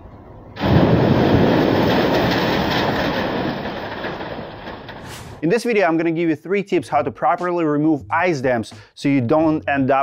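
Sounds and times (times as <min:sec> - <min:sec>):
ice crashing down from roof: 0:00.6 - 0:05.4.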